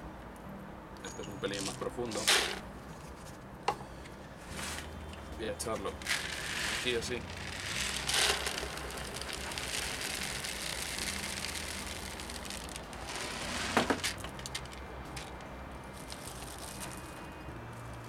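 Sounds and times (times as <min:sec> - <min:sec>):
grains pouring into plastic pot: 0:05.9 - 0:15.3, 0:15.9 - 0:17.0
plastic bag crinkling: 0:05.9 - 0:15.3.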